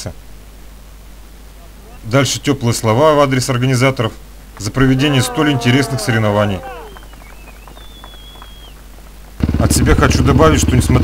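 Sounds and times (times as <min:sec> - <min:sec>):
muffled hand clapping: 0:04.5 - 0:09.5.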